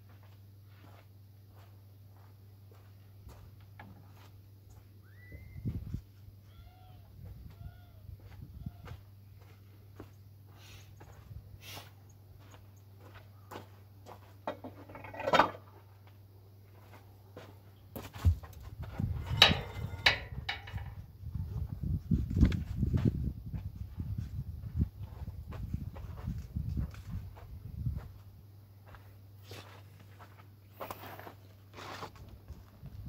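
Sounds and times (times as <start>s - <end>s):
footsteps on dirt: 0.0s - 5.0s, 7.2s - 14.4s, 15.9s - 33.0s.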